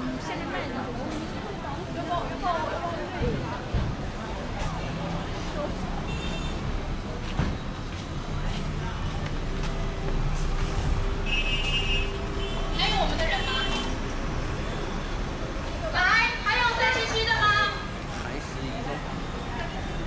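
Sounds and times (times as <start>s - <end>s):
people talking: 0.0s - 7.5s, 12.6s - 14.0s, 15.6s - 20.0s
road traffic passing: 0.0s - 20.0s.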